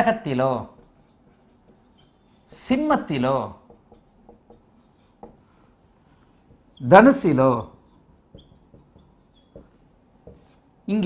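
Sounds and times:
person speaking: 0.0 - 4.2, 6.5 - 8.7, 10.3 - 11.0
marker writing on whiteboard: 0.0 - 11.0.

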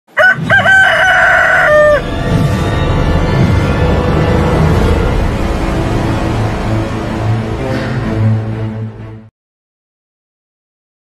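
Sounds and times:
rooster crowing: 0.1 - 2.4.

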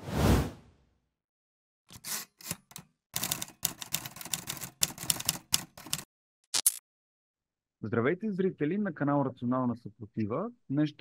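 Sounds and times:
typewriter key clacks: 2.5 - 6.0.

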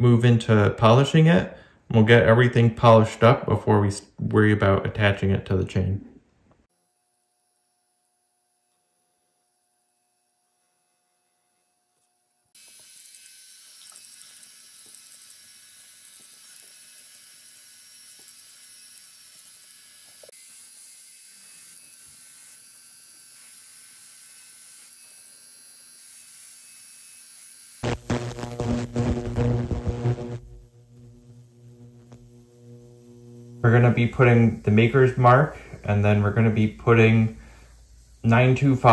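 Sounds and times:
rotary tool hissing while polishing: 12.6 - 29.3, 30.4 - 38.9
loud electrical hum: 27.8 - 38.9.

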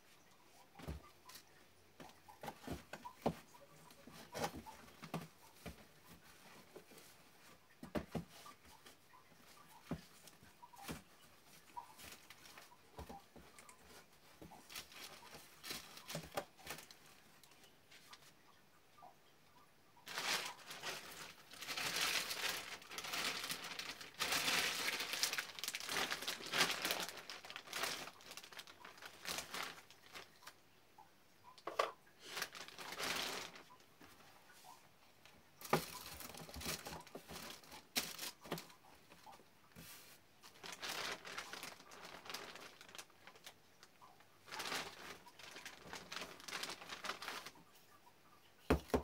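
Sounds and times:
light rustling of packets: 0.0 - 18.6, 20.0 - 30.7, 31.5 - 49.0
plastic bag crinkling: 9.4 - 18.2, 20.0 - 30.6, 31.7 - 33.8, 35.6 - 39.4, 40.4 - 47.6.

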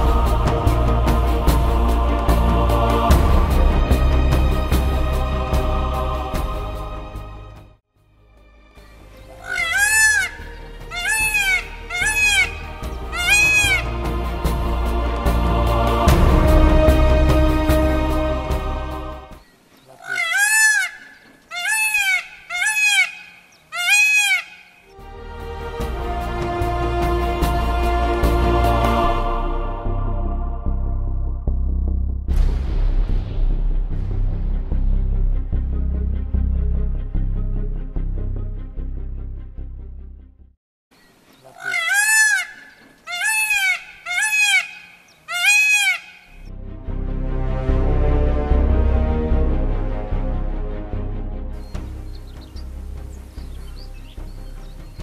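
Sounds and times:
peafowl calling: 8.8 - 14.2, 19.4 - 25.0, 41.0 - 46.5.

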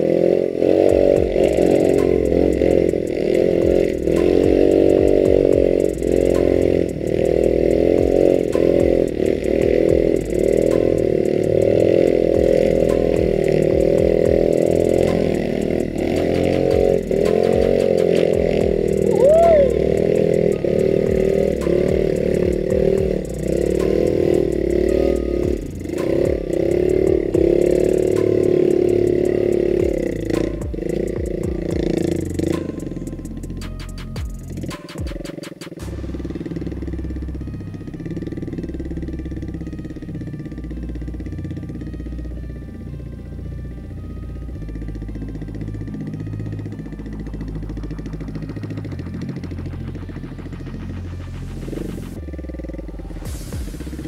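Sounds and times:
small motorbike engine revving: 0.0 - 54.0.

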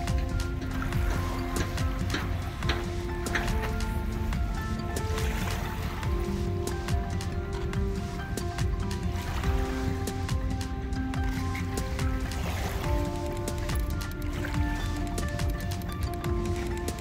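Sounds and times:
background music of held notes: 0.0 - 17.0.

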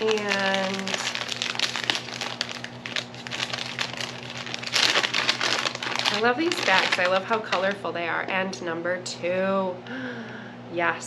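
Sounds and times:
paper bag rustling and crinkling: 0.0 - 7.8.

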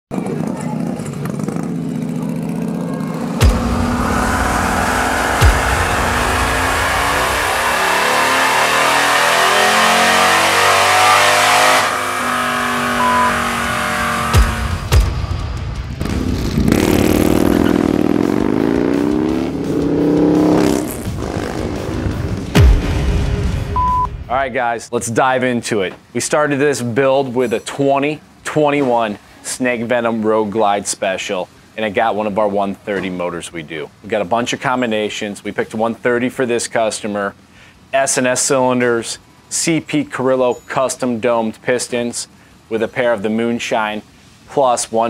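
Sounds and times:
motorcycle engine revving: 0.1 - 22.9
sharp thumps: 3.3 - 8.9, 13.0 - 23.3.

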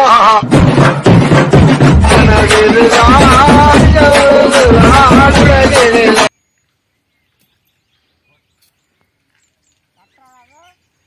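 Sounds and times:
small bird chirps: 6.3 - 11.0.

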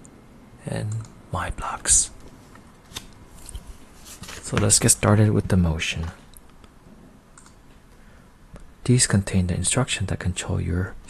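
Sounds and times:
computer mouse clicks: 0.9 - 1.2, 7.4 - 7.6.

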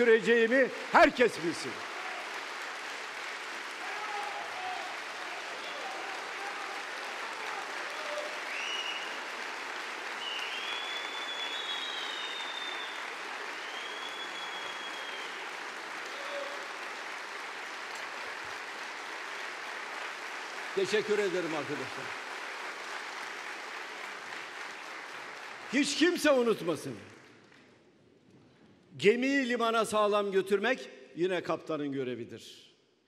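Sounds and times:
audience applauding: 0.0 - 27.8.

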